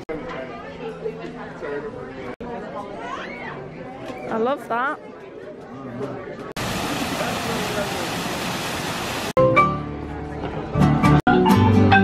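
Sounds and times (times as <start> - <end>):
indistinct chatter of people: 0.0 - 8.2, 9.9 - 10.8.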